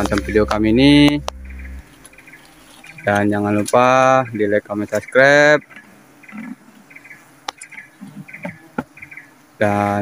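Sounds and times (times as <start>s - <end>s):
bees buzzing: 0.0s - 4.4s.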